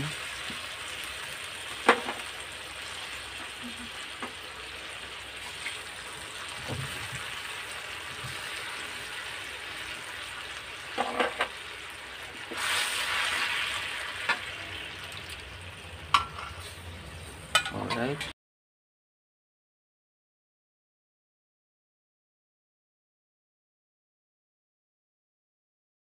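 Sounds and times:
oil sizzling in a wok: 0.0 - 17.7.

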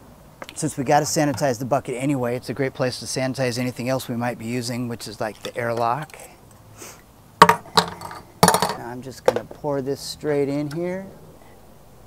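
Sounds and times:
plastic parts knocking in a bucket: 7.4 - 9.6.

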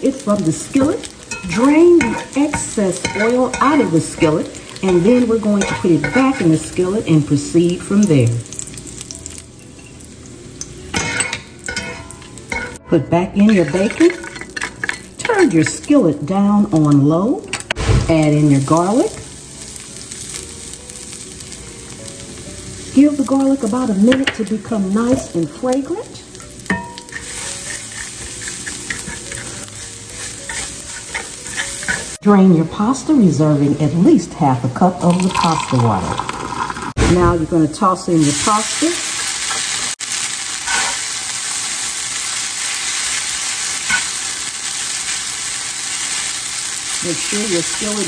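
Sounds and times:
food sizzling in skillet: 0.0 - 48.0
tossing with tongs: 0.4 - 6.8, 10.6 - 12.8, 13.4 - 15.9, 26.3 - 32.2.

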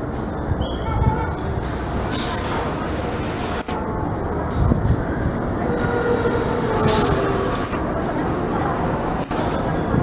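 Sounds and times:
train rumbling past: 0.0 - 10.0.

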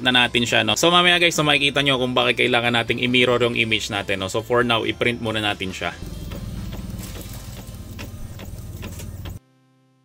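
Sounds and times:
faint musical tone: 0.0 - 9.4
printer carriage whirring and ticking: 6.0 - 9.4.

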